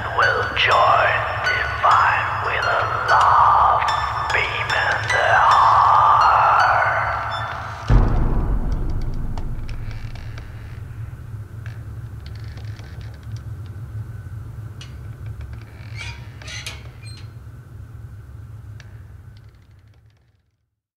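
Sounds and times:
low rumbling drone: 6.8 - 12.1.

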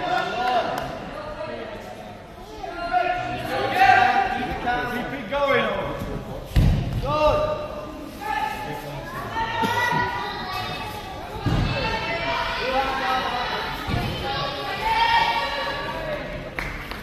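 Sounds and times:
voices echoing in a hall: 0.0 - 17.0.

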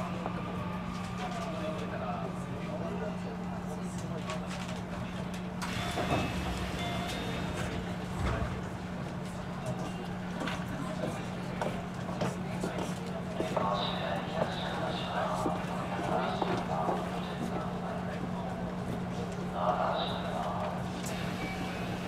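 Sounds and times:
electric train low hum: 0.0 - 22.0
short high tones: 5.7 - 8.7.

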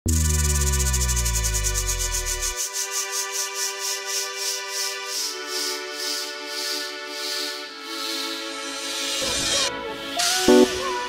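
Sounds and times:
deep bass tones gliding down: 0.0 - 2.6
sustained synth chord: 0.0 - 2.6
fast hissing rhythmic pulse: 0.1 - 10.6.

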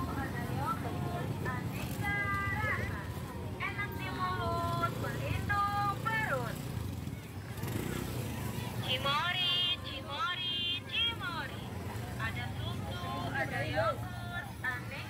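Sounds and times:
people's voices: 0.0 - 15.0.

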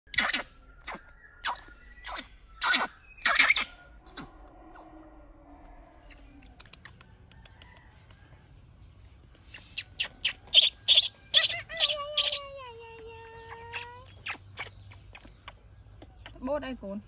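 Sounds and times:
baby monkey squealing: 0.1 - 4.3, 9.5 - 12.7, 13.4 - 15.6.

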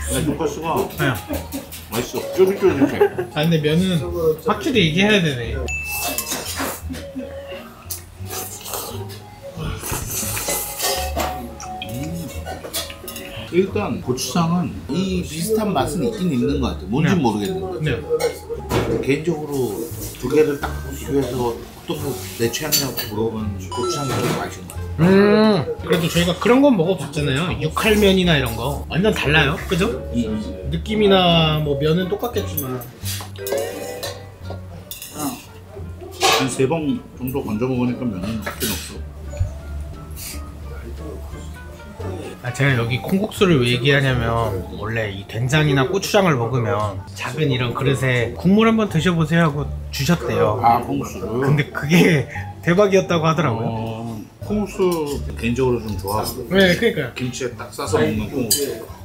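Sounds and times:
bowl and utensils clinking: 5.6 - 7.1, 9.9 - 13.6, 17.4 - 19.2, 22.6 - 24.9, 32.2 - 37.5
background music with bass: 17.9 - 36.3.

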